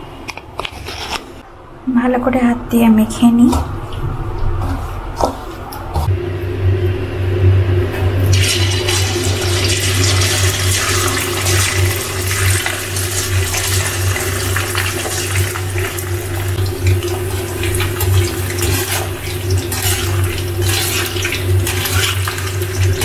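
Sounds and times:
low steady hum: 1.2 - 23.0
chicken sizzling in hot oil: 8.3 - 23.0.

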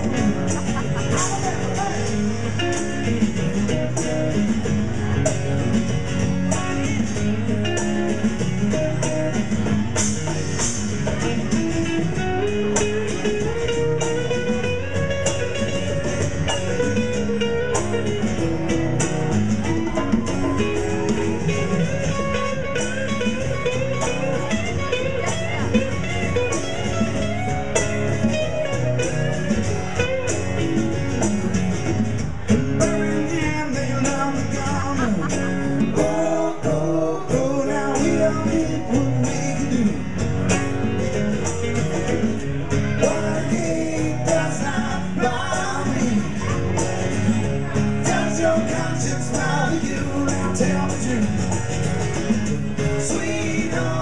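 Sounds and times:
drum kit beat: 0.0 - 54.0
electric and acoustic guitars: 0.0 - 54.0.

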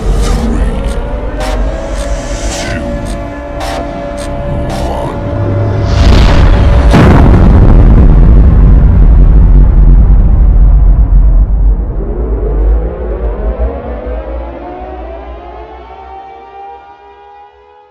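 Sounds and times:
rising music tones: 0.0 - 7.3, 11.6 - 17.9
deep rumble: 0.0 - 15.2
explosion blasts: 5.3 - 12.1.

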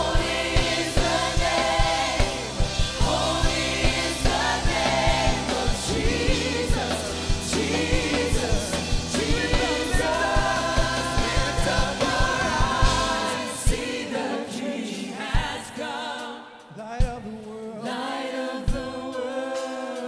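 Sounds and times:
band playing: 0.0 - 14.0
gospel choir singing: 0.0 - 20.0.

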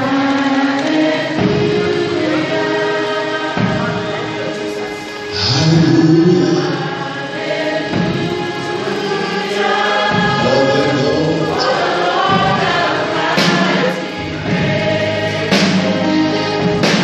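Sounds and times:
choir singing gospel: 0.0 - 17.0
soloist singing into microphone: 5.3 - 7.4, 8.5 - 14.0.

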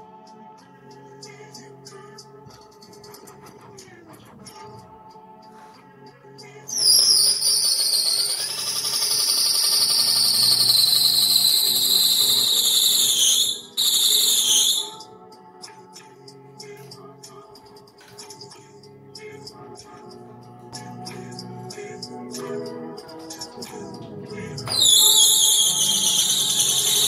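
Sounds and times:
background music: 0.0 - 27.0.

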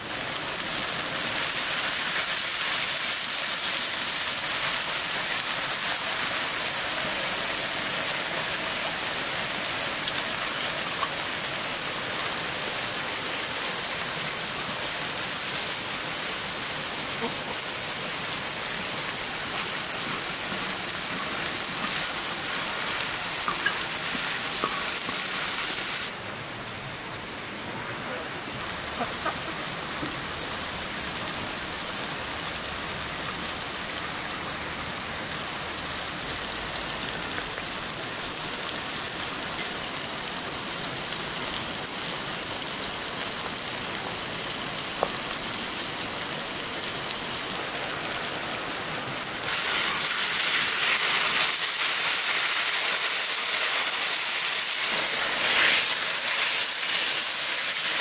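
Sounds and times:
vegetables sizzling on a griddle: 0.0 - 26.1, 28.1 - 58.0.

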